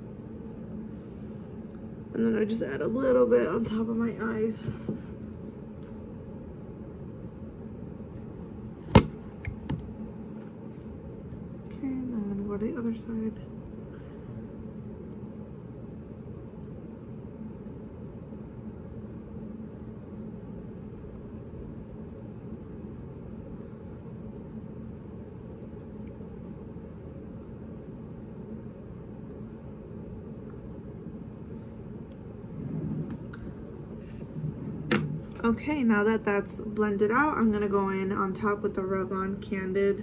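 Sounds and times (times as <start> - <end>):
low room rumble with hum: 0.0 - 40.0.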